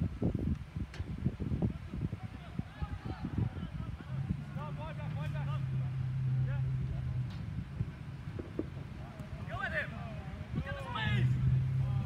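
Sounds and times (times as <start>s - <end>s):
distant shouts: 2.3s - 12.0s
low rumbling thumps: 3.2s - 9.4s.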